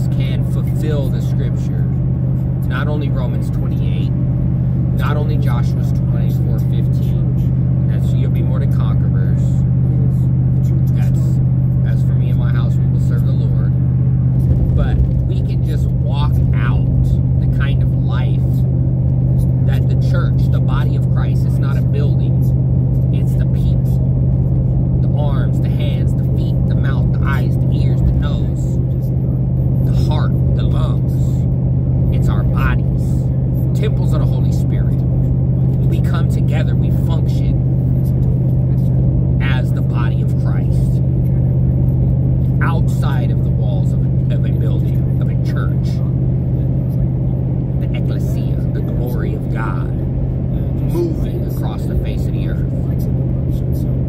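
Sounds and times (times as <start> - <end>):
man talking: 0.0 - 4.2, 4.8 - 13.8, 14.4 - 18.7, 19.3 - 24.1, 25.0 - 29.2, 29.8 - 31.5, 32.1 - 41.5, 42.5 - 47.0, 47.8 - 54.0
vehicle driving at highway speed: 0.0 - 54.0.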